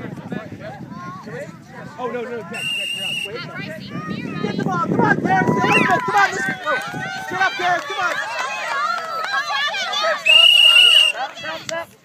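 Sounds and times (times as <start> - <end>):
referee's whistle blast: 2.6 - 3.4
children and adults shouting: 3.4 - 11.6.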